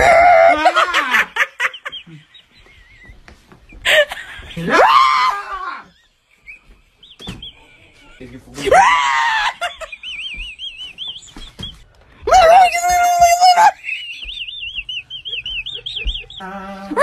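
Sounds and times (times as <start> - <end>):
people screaming: 0.0 - 1.4, 4.6 - 6.0, 8.6 - 9.7.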